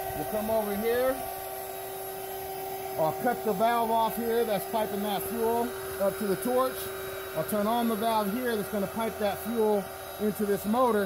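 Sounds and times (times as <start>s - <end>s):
electric blower fan humming: 0.0s - 11.0s.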